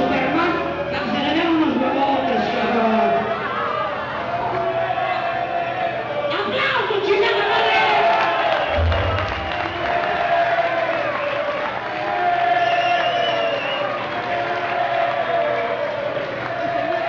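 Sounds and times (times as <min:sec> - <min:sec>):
crowd cheering: 0:00.1 - 0:17.0
deep thump: 0:08.8 - 0:10.2.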